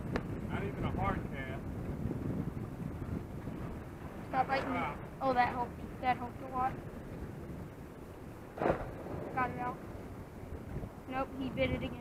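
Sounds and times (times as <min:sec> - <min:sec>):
surf: 0:00.0 - 0:12.0
wind: 0:00.0 - 0:12.0
short thump: 0:08.6 - 0:09.2.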